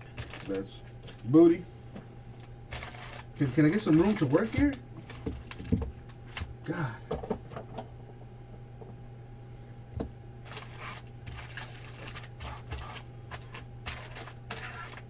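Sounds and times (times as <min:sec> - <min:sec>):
cards sliding and rustling: 0:10.5 - 0:15.0.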